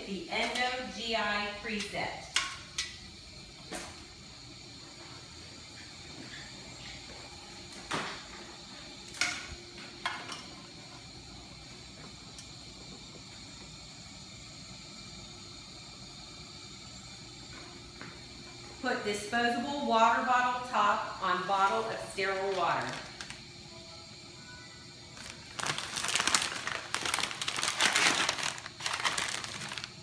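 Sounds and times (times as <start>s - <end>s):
equipment hum: 0.0s - 30.0s.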